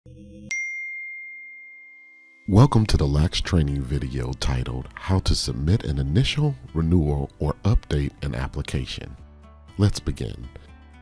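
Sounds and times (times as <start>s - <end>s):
bright ringing chime: 0.5s - 2.6s.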